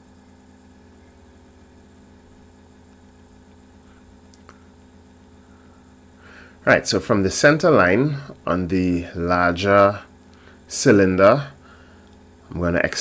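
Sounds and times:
faint electrical mains hum: 0.0s - 13.0s
faint clicks: 4.3s - 4.6s.

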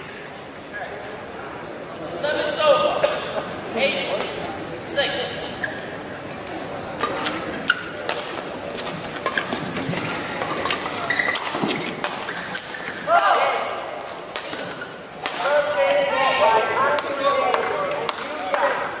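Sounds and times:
shoes squeaking on floor: 11.0s - 11.9s.

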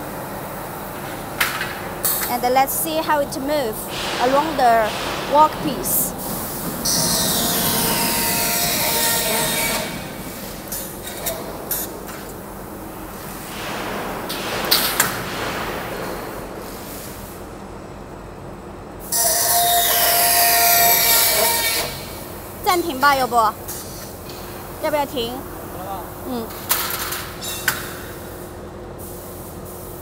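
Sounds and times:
machine running: 2.4s - 15.9s
circular saw cutting metal: 6.8s - 10.6s, 19.2s - 22.1s.

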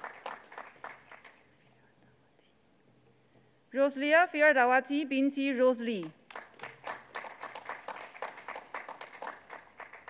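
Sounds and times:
people clapping: 0.0s - 1.6s, 6.0s - 10.0s.

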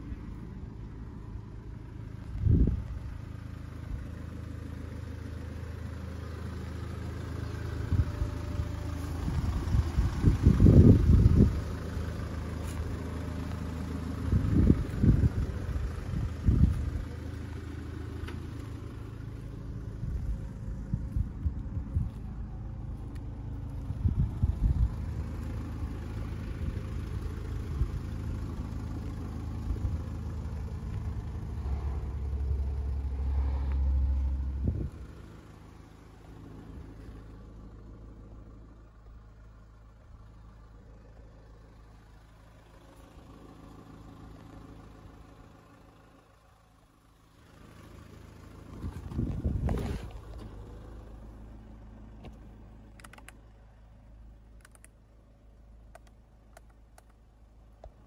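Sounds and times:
diesel engine idling: 0.0s - 58.0s
light clicks: 52.2s - 53.4s, 54.6s - 55.0s.

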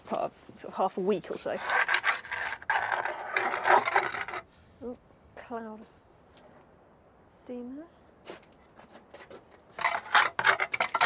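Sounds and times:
scraping on stone oven floor: 1.2s - 4.5s, 8.3s - 11.0s.

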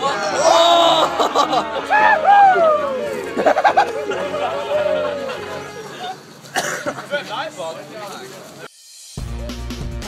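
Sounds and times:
people laughing: 0.0s - 7.3s
young people talking: 3.0s - 8.7s
person coughing: 6.5s - 7.0s.

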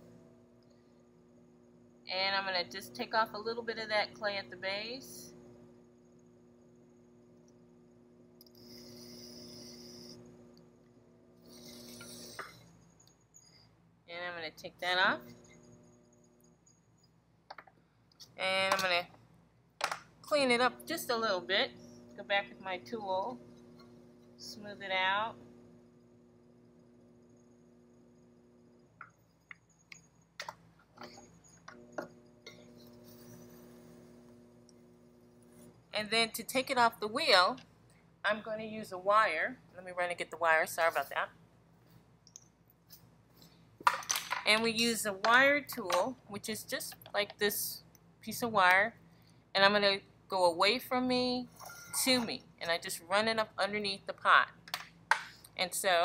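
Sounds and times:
potter's wheel humming: 0.0s - 42.0s, 42.8s - 56.0s.

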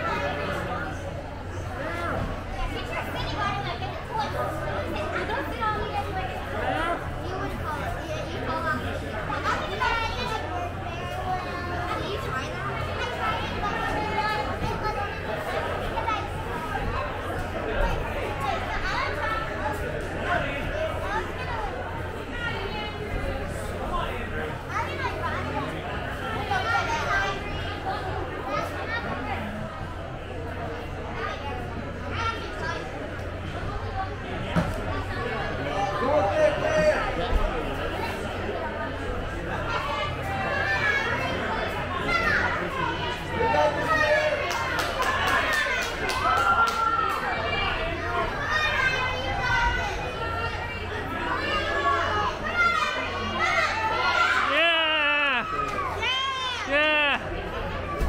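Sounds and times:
background chatter of people: 0.0s - 58.0s.

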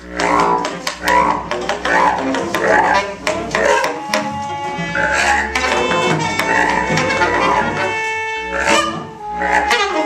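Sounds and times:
free jazz quartet playing: 0.0s - 10.0s
low drone: 2.0s - 9.7s.

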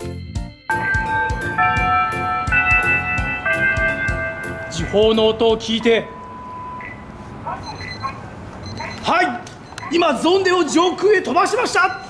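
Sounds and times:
electronic time-signal beep: 5.6s - 10.0s, 11.6s - 12.0s.

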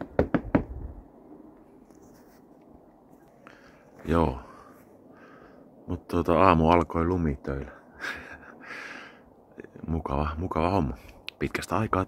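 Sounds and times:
faint background hiss: 0.0s - 12.0s.

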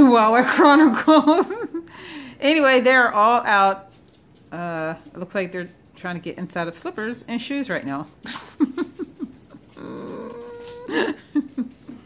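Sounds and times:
puppy whining: 8.2s - 12.0s.

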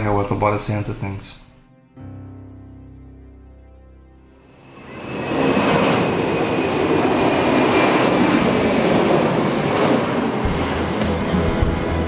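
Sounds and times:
music: 0.0s - 5.5s, 10.4s - 12.0s
jet airliner engines: 4.4s - 12.0s.

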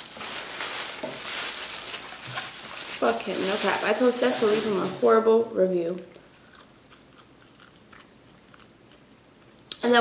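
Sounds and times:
person chewing fries: 6.1s - 9.8s.

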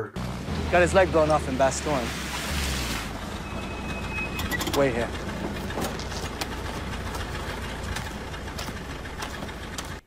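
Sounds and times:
jeep engine idling: 3.1s - 10.0s.

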